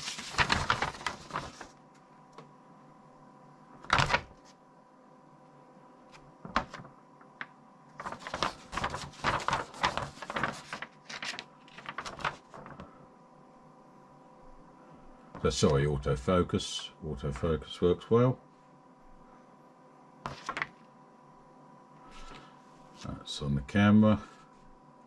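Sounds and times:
paper rustling and crackling: 0.0s - 2.0s, 3.8s - 4.6s, 6.1s - 13.0s, 20.3s - 20.8s
faint steady hum: 0.0s - 25.0s.

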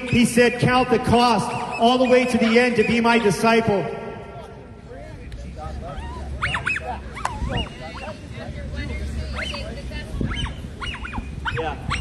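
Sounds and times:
animal whining calls: 5.9s - 8.2s, 9.2s - 12.0s.

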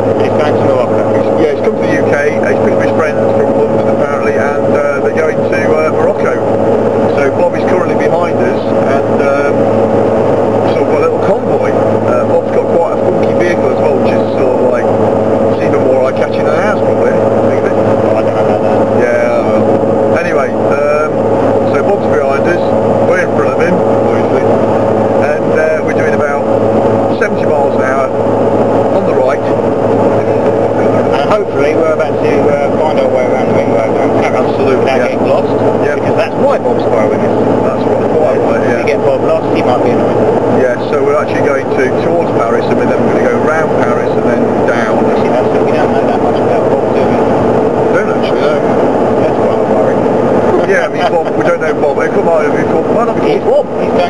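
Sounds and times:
car engine and road drone: 0.0s - 54.0s
constant humming tone: 0.0s - 54.0s.

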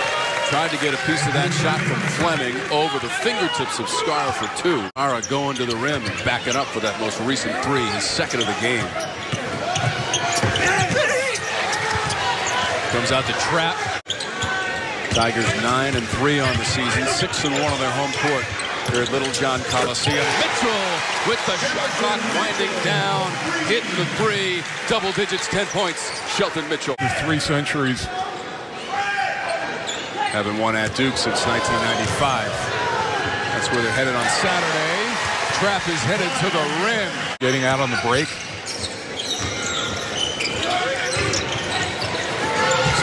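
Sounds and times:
crowd noise and voices: 0.0s - 43.0s.

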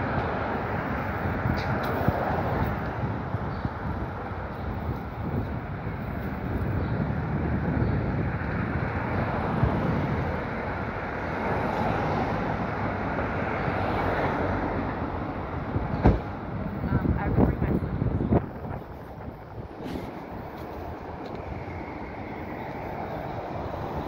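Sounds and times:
wind buffeting microphone: 0.0s - 13.9s, 15.0s - 24.0s
city street background noise: 0.0s - 24.0s.

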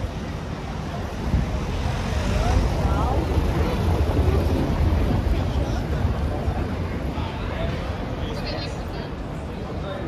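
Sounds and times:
passersby talking: 0.0s - 10.0s
street rumble: 0.0s - 10.0s.

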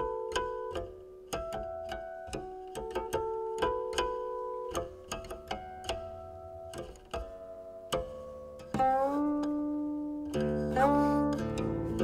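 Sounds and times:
guqin plucked notes: 0.0s - 12.0s.

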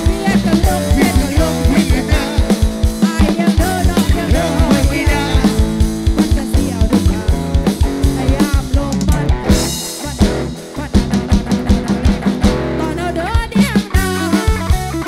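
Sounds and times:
live band playing instrumental: 0.0s - 15.0s.

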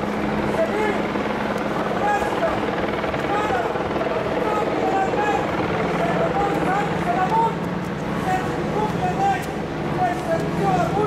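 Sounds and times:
low mechanical drone: 0.0s - 11.0s
crowd talking: 1.7s - 11.0s.

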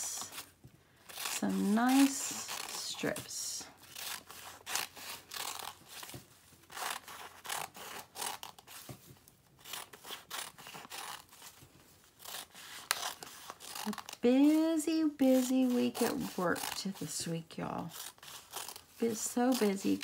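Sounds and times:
scissors snipping paper: 1.1s - 8.8s, 9.6s - 11.6s, 12.2s - 20.0s.

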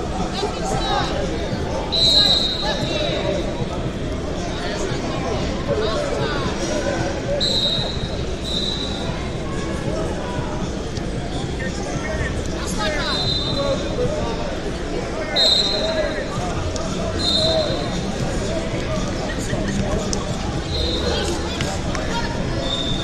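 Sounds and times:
people talking and shouting: 0.0s - 23.0s.

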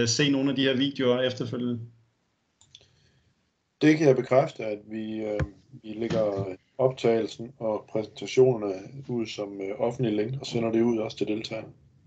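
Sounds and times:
person speaking: 0.0s - 1.9s, 3.8s - 11.7s.

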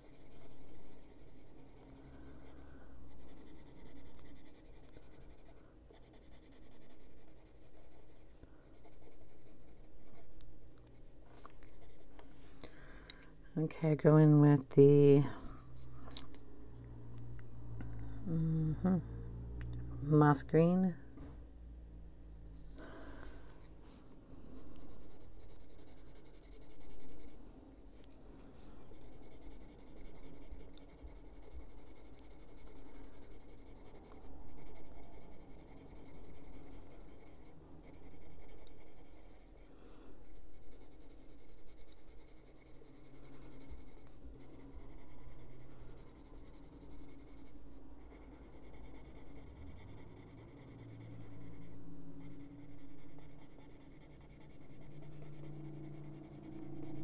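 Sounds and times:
pencil shading on paper: 0.0s - 10.4s, 11.0s - 12.4s, 24.5s - 57.0s.

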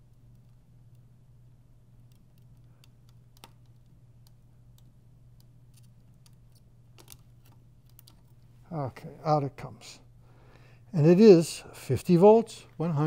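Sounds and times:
small clicks and ticks: 0.0s - 1.1s, 1.9s - 8.5s
steady low hum: 0.0s - 13.0s.

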